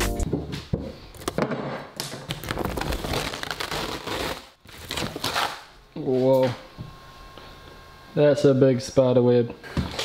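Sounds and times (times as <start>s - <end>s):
foil insulation crumpling: 2.3s - 5.7s.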